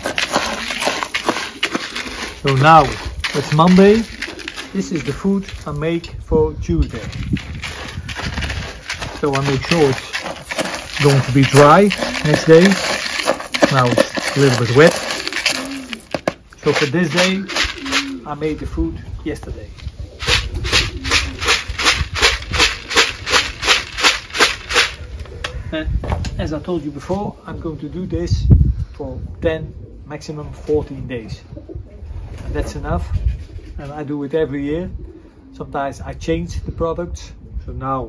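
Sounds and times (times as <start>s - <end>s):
spoon stirring seed in a bucket: 0.0s - 6.1s, 6.8s - 18.3s.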